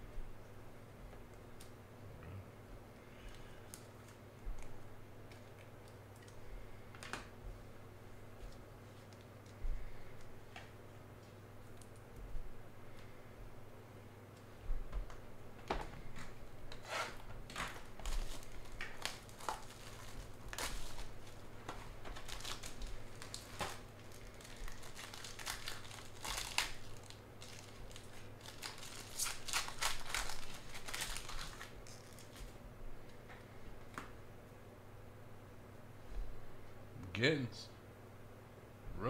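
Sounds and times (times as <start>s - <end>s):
foil wrapper crinkling: 17.5s - 32.6s.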